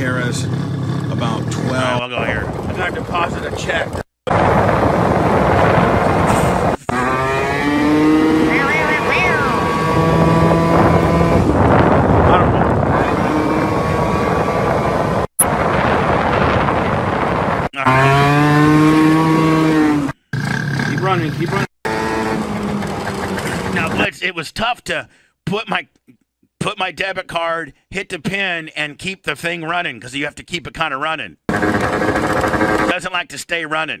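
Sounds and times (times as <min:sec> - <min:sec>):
moped engine running: 0:00.0 - 0:03.6, 0:06.8 - 0:15.2, 0:16.8 - 0:24.1, 0:31.5 - 0:32.9
wind on microphone: 0:02.2 - 0:18.1.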